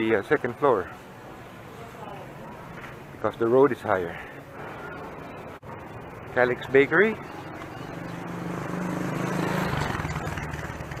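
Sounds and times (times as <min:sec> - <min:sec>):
vehicle engine passing by: 0:07.7 - 0:11.0.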